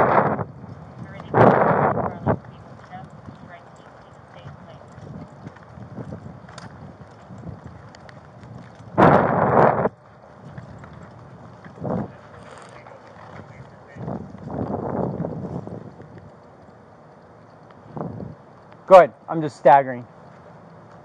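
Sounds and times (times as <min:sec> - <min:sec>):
footsteps on pavement: 0:00.0 - 0:21.0.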